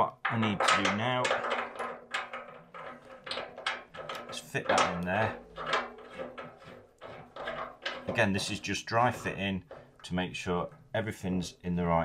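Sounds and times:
metal fittings clicking and knocking: 0.0 - 11.6.

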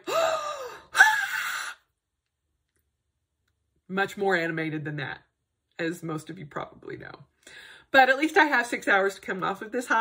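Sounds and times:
woman gasping: 0.0 - 1.9.

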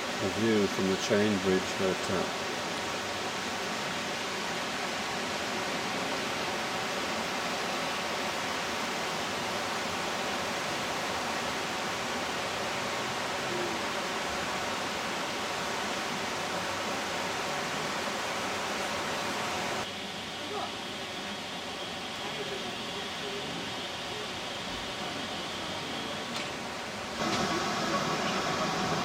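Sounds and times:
river rushing over rapids: 0.0 - 21.3, 26.6 - 29.0.

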